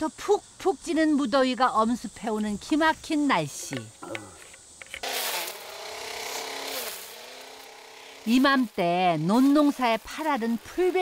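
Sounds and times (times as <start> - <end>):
trimmer line hissing through grass: 4.4 - 11.0
string trimmer motor whine: 5.0 - 11.0.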